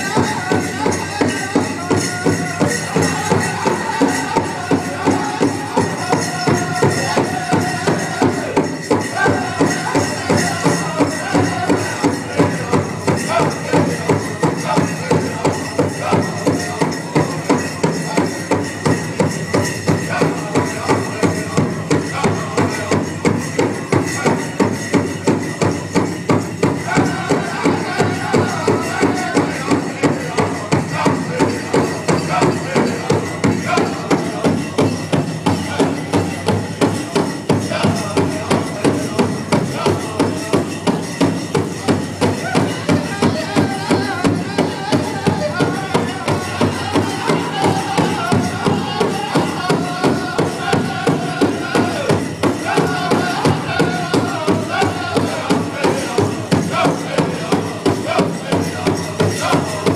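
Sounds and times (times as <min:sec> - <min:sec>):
group of singers: 0:00.0 - 0:59.9
large drum steady beat: 0:00.0 - 0:59.9.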